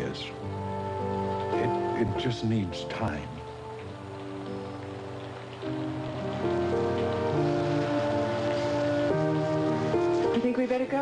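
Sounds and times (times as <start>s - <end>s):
rain hiss: 0.0s - 11.0s.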